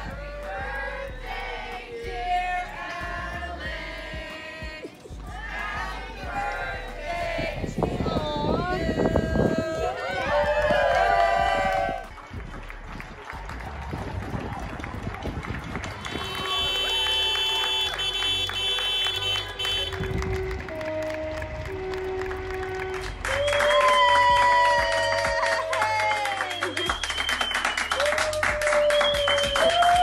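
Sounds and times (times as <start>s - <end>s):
background music: 0.0s - 30.0s
excited voices and shouts: 8.0s - 12.0s
crowd clapping and cheering: 8.2s - 30.0s.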